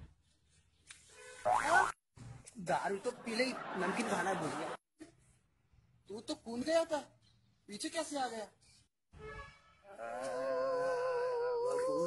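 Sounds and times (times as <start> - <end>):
cartoon boing sound effect: 1.5 - 2.0.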